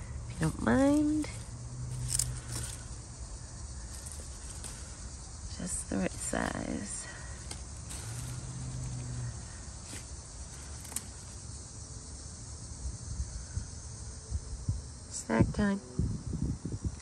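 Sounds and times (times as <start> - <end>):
clicks and rustles of vines: 0.3 - 11.5.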